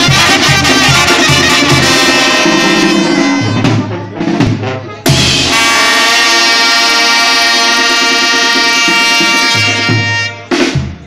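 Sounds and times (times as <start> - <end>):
drum strokes: 0.0 - 5.9
brass section holding a chord: 0.0 - 10.6.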